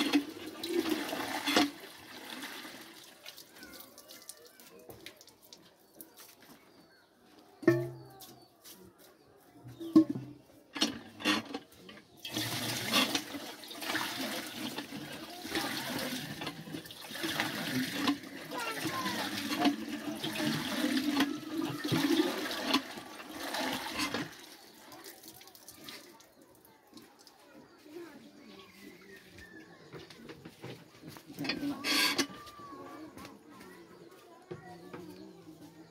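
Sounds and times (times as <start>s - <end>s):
water gushing into metal pot: 0.0s - 5.0s, 12.2s - 26.4s, 31.3s - 33.2s.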